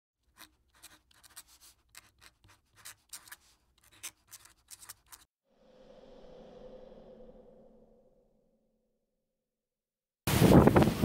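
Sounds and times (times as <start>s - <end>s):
pen scratching on paper: 0.2s - 5.2s.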